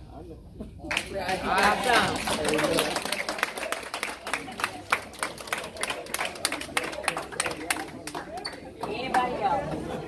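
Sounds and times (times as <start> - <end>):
people clapping: 0.9 - 9.9.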